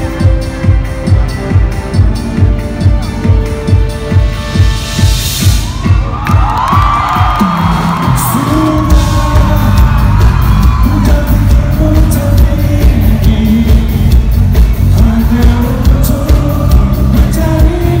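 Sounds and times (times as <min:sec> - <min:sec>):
crowd whooping and yelling: 0:05.6 - 0:11.8
live rock band with singer: 0:06.9 - 0:18.0.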